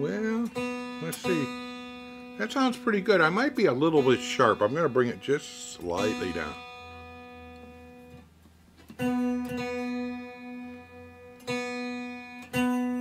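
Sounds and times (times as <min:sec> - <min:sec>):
electric guitar notes plucked: 0:00.0 - 0:08.3, 0:08.9 - 0:13.0.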